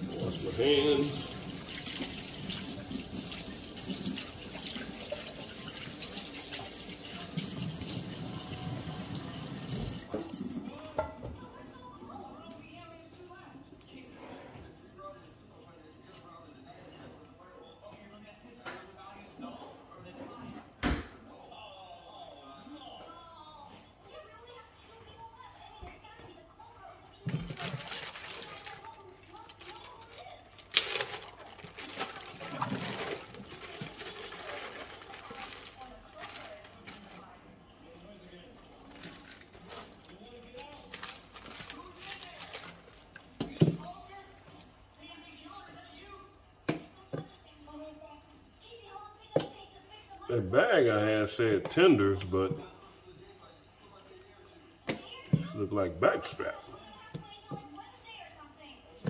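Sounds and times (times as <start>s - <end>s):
plastic freezer bags crinkling: 27.2s - 37.4s, 38.7s - 43.2s.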